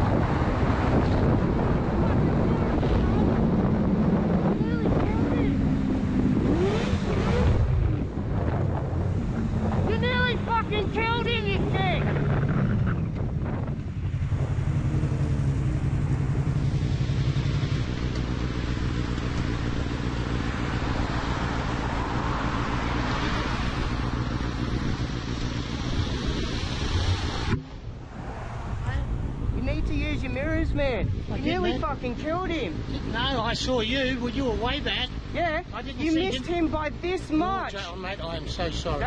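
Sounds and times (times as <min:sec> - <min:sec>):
motorcycle engine running: 0:00.0 - 0:27.7
wind rushing over microphone: 0:00.0 - 0:33.6
person shouting: 0:09.9 - 0:12.1.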